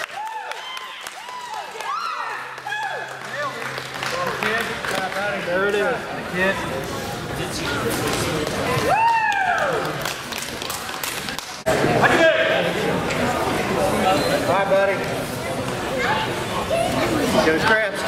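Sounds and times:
voices talking in echoing hall: 1.0 - 18.0.

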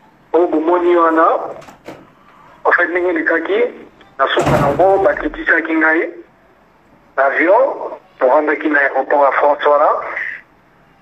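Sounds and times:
person speaking: 2.6 - 6.3.

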